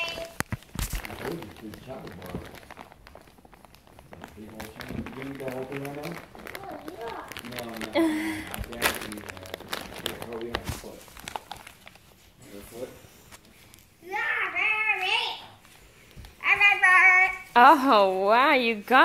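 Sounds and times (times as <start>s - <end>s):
rustling: 0.0s - 19.0s.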